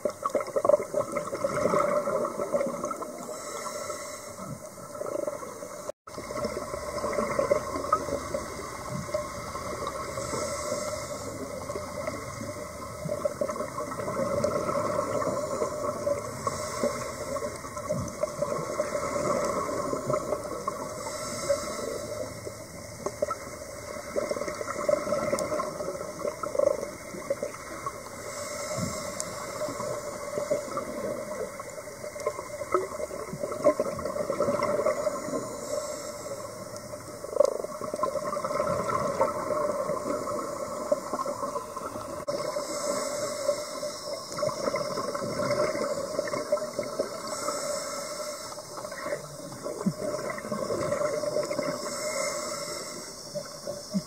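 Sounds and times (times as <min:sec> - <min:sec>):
muffled underwater hum: 0:00.0 - 0:54.0.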